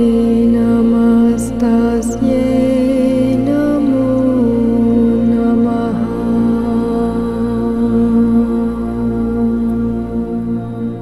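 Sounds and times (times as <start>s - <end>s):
low drone: 0.0s - 11.0s
voice chanting long notes: 0.0s - 11.0s.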